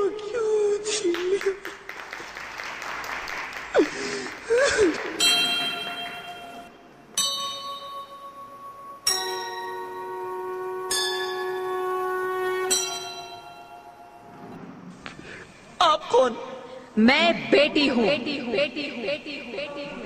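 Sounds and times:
bell chimes ringing: 0:05.2 - 0:10.3.

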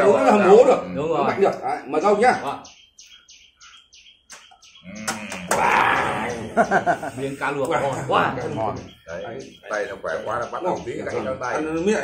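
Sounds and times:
small bird chirping: 0:00.8 - 0:12.0.

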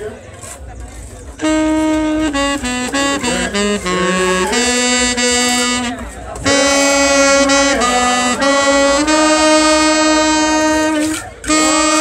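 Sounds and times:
slow wind instrument melody: 0:01.3 - 0:12.0.

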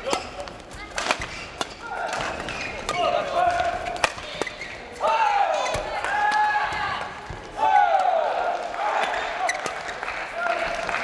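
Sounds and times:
racket hitting shuttlecock: 0:00.0 - 0:08.1
voices in a hall: 0:00.0 - 0:11.0.

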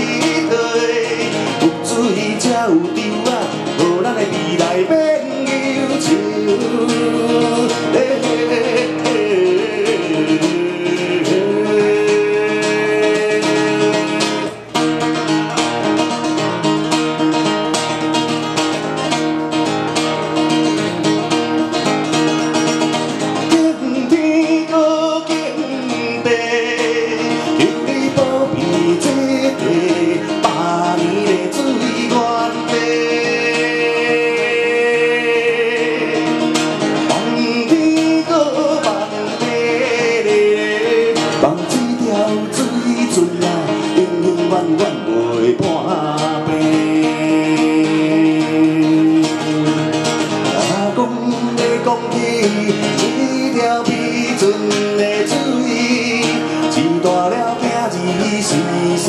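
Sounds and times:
man singing slow song: 0:00.0 - 0:14.8, 0:23.4 - 0:59.0
strummed acoustic guitar: 0:00.0 - 0:59.0.

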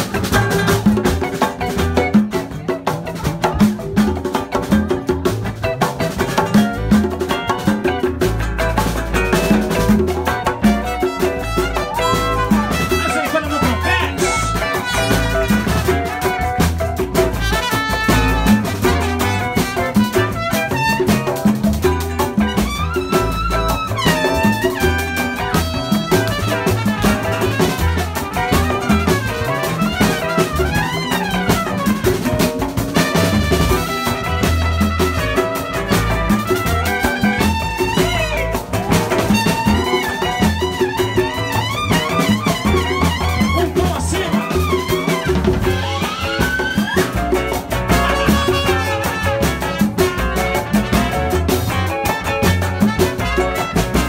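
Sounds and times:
bossa nova band playing: 0:00.0 - 0:54.0
drum kit with cymbals: 0:00.0 - 0:54.0
plucked double bass: 0:00.0 - 0:54.0
trumpet melody: 0:05.7 - 0:54.0.

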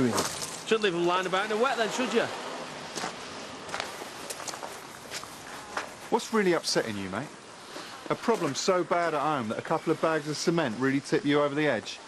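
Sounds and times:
faint outdoor hiss: 0:00.0 - 0:12.0
soft footsteps: 0:02.9 - 0:06.2.

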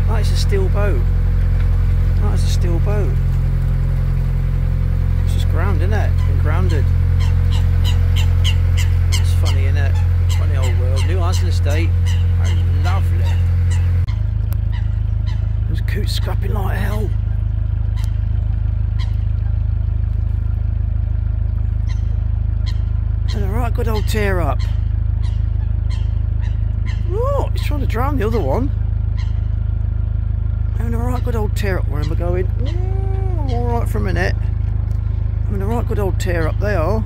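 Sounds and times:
boat engine humming: 0:00.0 - 0:37.0
steady low rumble: 0:00.0 - 0:37.0
coots honking calls: 0:05.6 - 0:19.6, 0:21.8 - 0:34.2.

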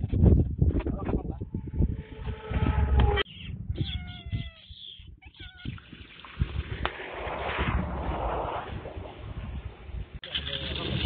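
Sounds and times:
cat meowing: 0:03.3 - 0:05.8.

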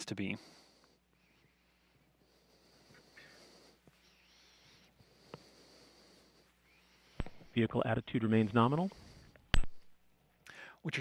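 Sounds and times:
faint hiss and hum: 0:00.0 - 0:11.0.

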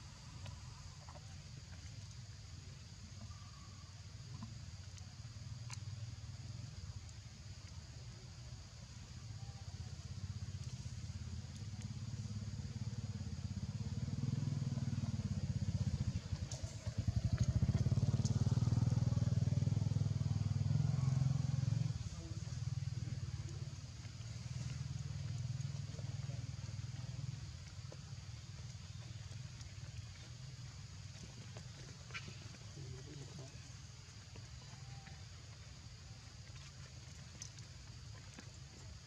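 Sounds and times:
motorcycle engine rumble: 0:10.3 - 0:35.6.

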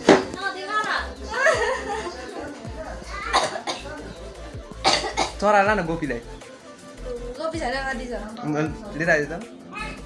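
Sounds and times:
sharp cough: 0:03.2 - 0:04.0, 0:04.8 - 0:05.4.

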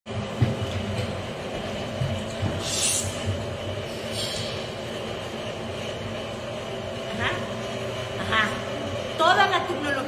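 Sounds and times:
footsteps on steel stairs: 0:00.2 - 0:03.6.

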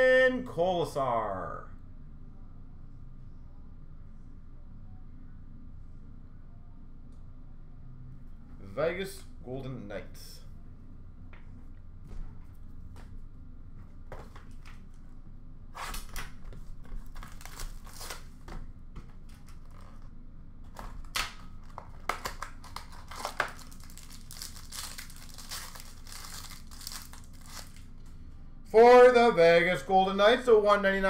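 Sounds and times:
card packaging crinkling and tearing: 0:15.8 - 0:18.4, 0:20.7 - 0:28.0.

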